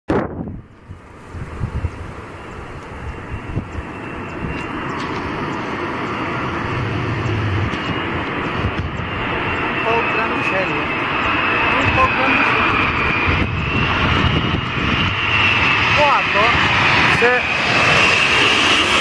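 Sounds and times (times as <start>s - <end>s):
jet engines rushing: 0.1s - 19.0s
thin high whine: 0.2s - 14.2s.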